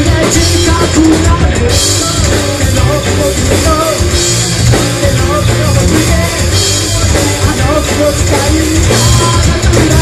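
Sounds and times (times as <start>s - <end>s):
drum kit beat: 0.0s - 10.0s
rock band playing live: 0.0s - 10.0s.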